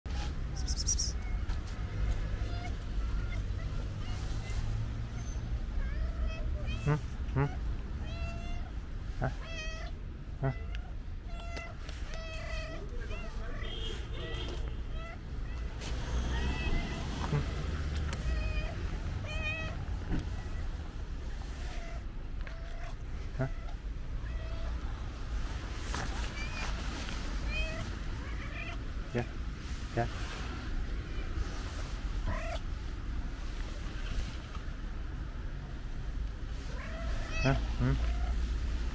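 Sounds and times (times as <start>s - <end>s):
cat meowing: 0.5s - 8.7s, 9.3s - 14.0s, 14.8s - 20.8s, 27.4s - 28.8s, 36.6s - 38.4s.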